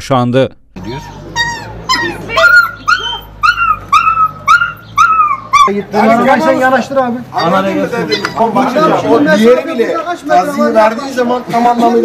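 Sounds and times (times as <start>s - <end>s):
puppy crying: 0.8s - 9.2s.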